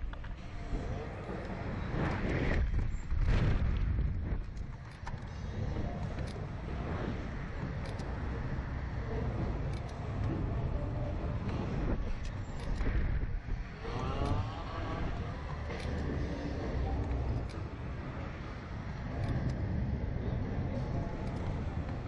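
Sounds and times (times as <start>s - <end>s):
wind buffeting camera: 0.0s - 22.0s.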